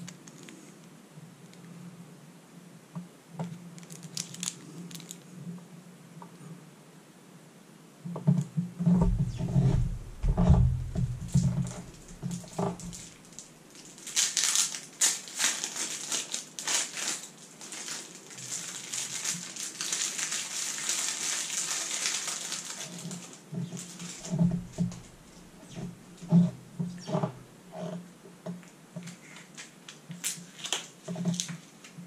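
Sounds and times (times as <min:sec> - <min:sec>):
plastic wrapping crinkling and ripping: 0:00.0 - 0:00.7, 0:03.7 - 0:05.4, 0:11.0 - 0:25.8, 0:29.1 - 0:32.0
low thumps and knocks: 0:08.8 - 0:13.2, 0:23.6 - 0:27.5.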